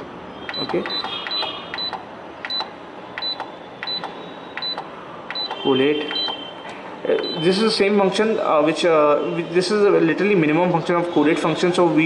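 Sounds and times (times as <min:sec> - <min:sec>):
short high beeps: 0:00.5 - 0:06.6.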